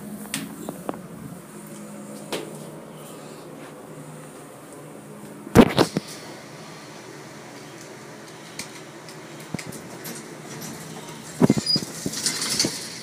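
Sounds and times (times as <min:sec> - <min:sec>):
elevator car humming: 0:00.0 - 0:13.0
doors sliding open: 0:05.6 - 0:13.0.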